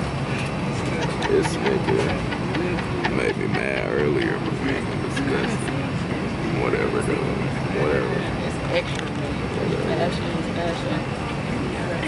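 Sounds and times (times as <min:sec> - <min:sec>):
airliner cabin hum: 0:00.0 - 0:12.0
indistinct passenger voices: 0:00.0 - 0:12.0.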